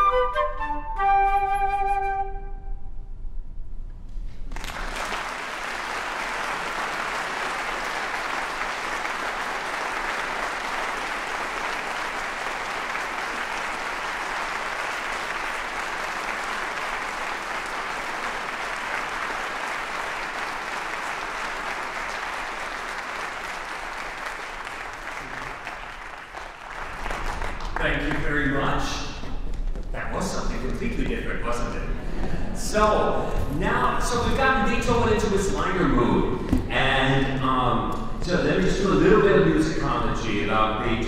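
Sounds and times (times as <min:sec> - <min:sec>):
audience applauding: 0:04.5 - 0:28.8.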